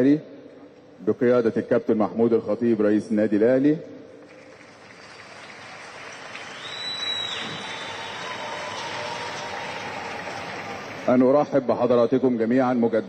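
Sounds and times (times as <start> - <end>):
audience applauding: 4.5 - 11.2
short whistle: 6.5 - 8.4.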